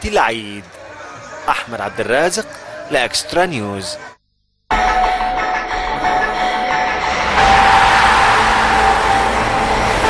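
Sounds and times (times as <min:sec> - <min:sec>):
electronic ident music: 0:06.0 - 0:10.0
loud rushing whoosh: 0:07.2 - 0:10.0.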